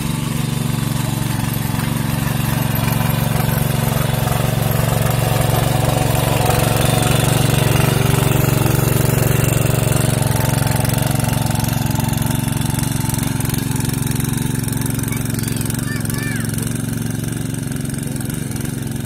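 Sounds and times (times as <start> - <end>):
power tiller engine running: 0.0 - 19.0
tines churning muddy soil: 0.0 - 19.0.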